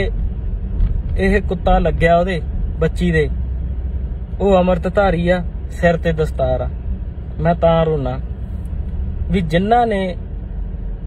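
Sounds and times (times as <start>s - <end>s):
car cabin rumble: 0.0s - 11.0s
man talking: 1.2s - 3.4s, 4.4s - 6.8s, 7.4s - 8.3s, 9.2s - 10.2s.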